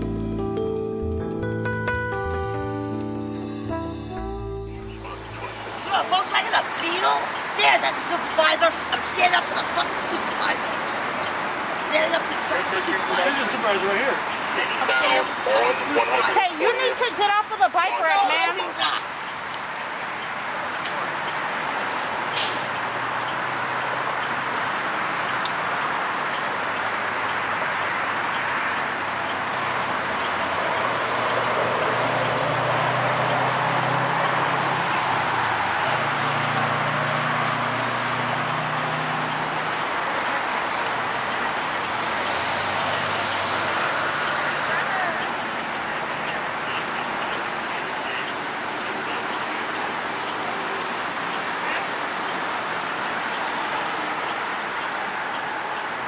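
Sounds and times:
bus engine idling: 0.0 - 19.5.

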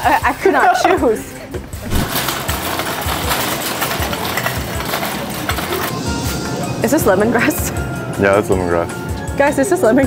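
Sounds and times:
shopping cart rattling: 1.8 - 5.9.

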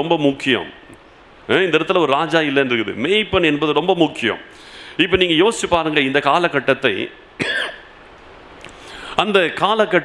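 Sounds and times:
man clearing his throat: 7.4 - 7.9.

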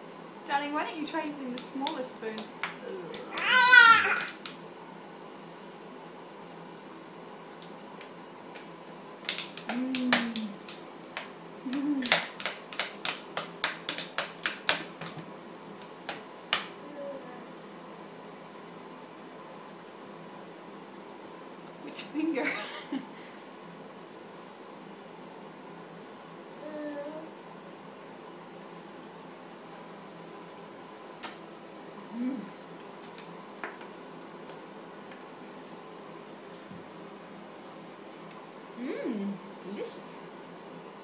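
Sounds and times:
person humming: 2.8 - 3.5, 9.7 - 10.6, 32.1 - 32.6.

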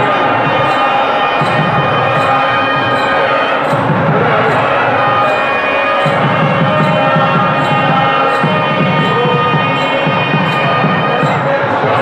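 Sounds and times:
devotional chanting: 0.0 - 12.0
regular percussion beat: 0.0 - 12.0.

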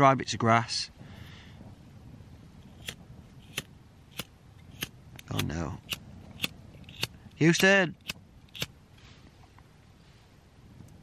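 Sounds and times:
lighter flint wheel clicks: 2.8 - 8.7.

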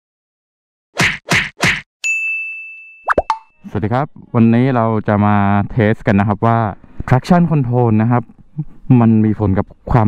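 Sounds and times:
bell-like ding: 2.0 - 3.7.

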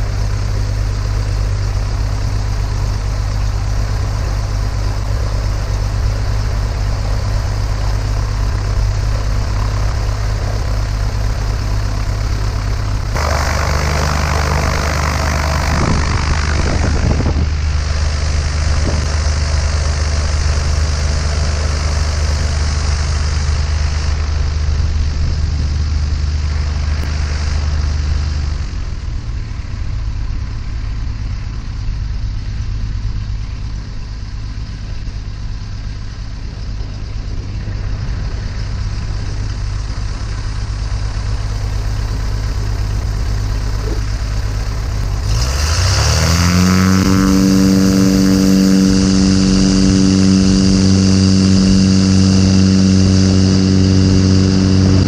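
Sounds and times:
light aircraft engine and propeller: 0.0 - 55.0.

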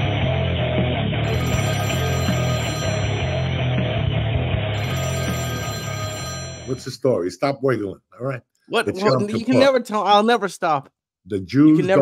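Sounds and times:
theme music: 0.0 - 7.0
telephone ringtone: 1.2 - 3.7, 4.8 - 6.9.

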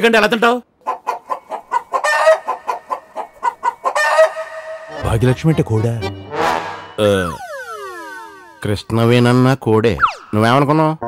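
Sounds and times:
hen clucking: 0.8 - 6.9.

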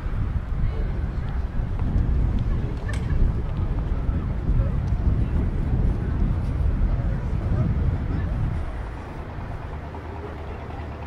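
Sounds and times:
low rumble of wind: 0.0 - 11.0
traffic rumble: 0.0 - 11.0
faint wavering voices: 0.5 - 11.0.

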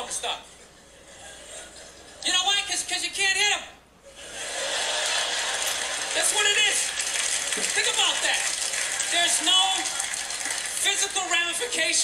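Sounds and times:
audience applauding: 4.5 - 11.6.

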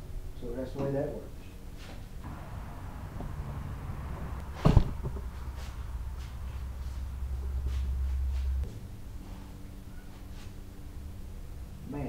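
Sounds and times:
steady low hum: 1.4 - 12.0.

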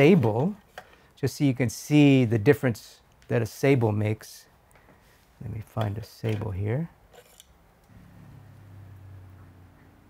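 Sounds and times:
low steady hum: 7.7 - 10.0.

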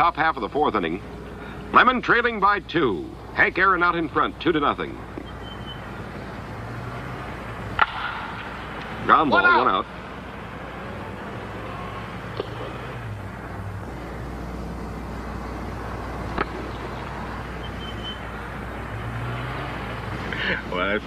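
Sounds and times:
broadcast hiss and hum: 0.0 - 19.2
faint ballpark ambience: 0.0 - 21.0
sharp knocks: 7.8 - 8.9.

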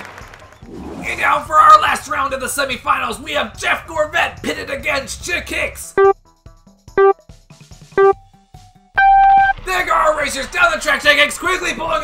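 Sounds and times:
countdown beeps: 8.0 - 8.2, 9.0 - 9.6.

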